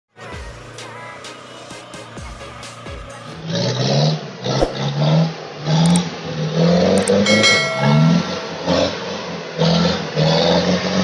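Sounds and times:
music with a beat: 0.4 - 3.4.

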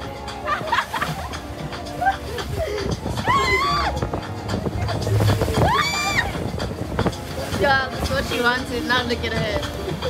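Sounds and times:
wind and water rushing: 0.0 - 10.0.

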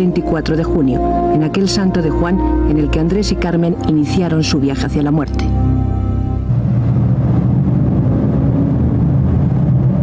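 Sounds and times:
heavy truck rumbling: 4.8 - 10.0.

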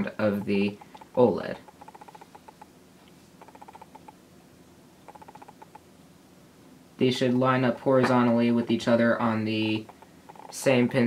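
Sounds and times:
faint steady hum: 0.0 - 11.0
rapid ticking or chittering: 0.3 - 2.7, 3.4 - 4.2, 5.0 - 5.8, 9.5 - 11.0.

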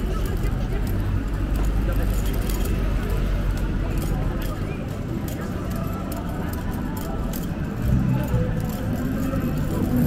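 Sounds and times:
passers-by talking: 0.0 - 10.0
road traffic rumble: 0.0 - 10.0.

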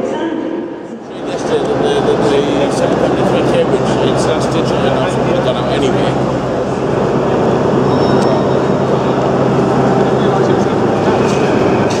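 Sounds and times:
constant low hum: 0.0 - 12.0
crowd chatter: 0.0 - 12.0.

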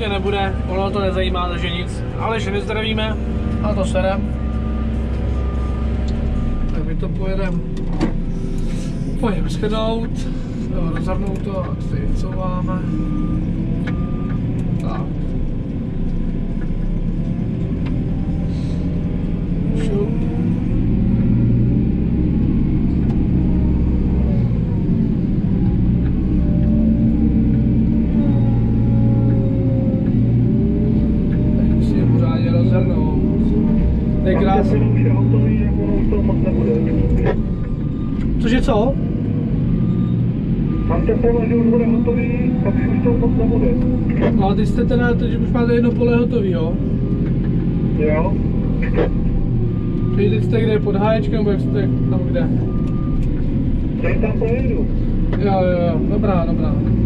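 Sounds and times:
diesel engine under load: 0.0 - 57.0.

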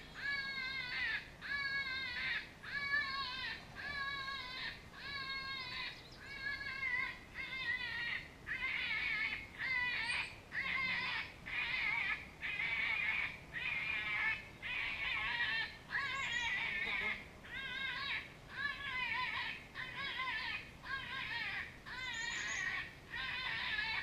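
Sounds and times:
predator call distress cry: 0.0 - 24.0.

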